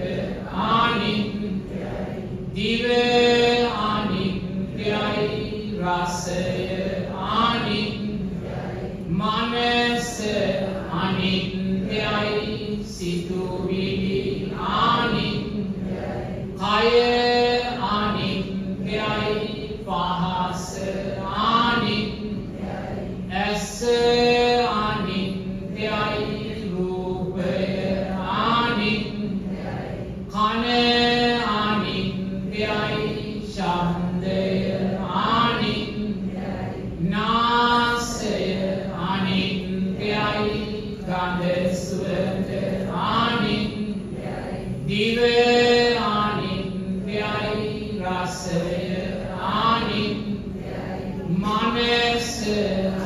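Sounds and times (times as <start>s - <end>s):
man chanting in held notes: 0.0s - 53.0s.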